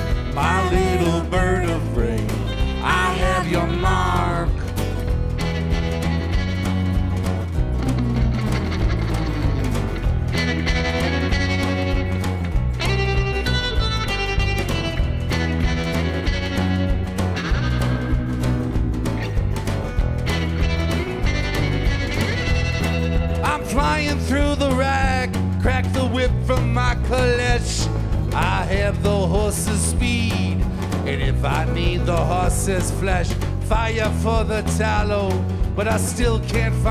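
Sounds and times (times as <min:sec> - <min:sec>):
drums: 0:00.0 - 0:36.9
electric bass: 0:00.0 - 0:36.9
electric guitar: 0:00.0 - 0:36.9
sliding guitar notes: 0:00.0 - 0:36.9
strummed acoustic guitar: 0:00.0 - 0:36.9.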